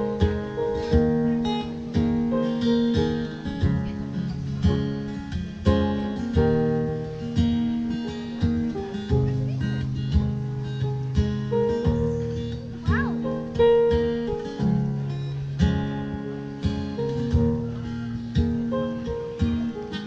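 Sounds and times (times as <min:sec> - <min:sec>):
acoustic guitar chords: 0:00.0 - 0:20.0.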